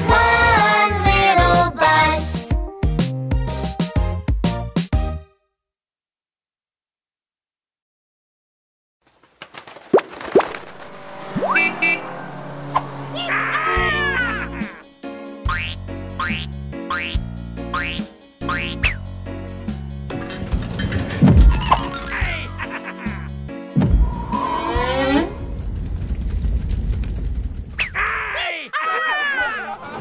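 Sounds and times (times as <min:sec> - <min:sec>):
cartoon rising swoop: 0:10.0 - 0:14.8, 0:23.8 - 0:25.6
falling voice-like glide: 0:10.5 - 0:14.8
high car horn toots: 0:10.9 - 0:14.7
cartoon fire rumble and hiss: 0:24.6 - 0:28.0.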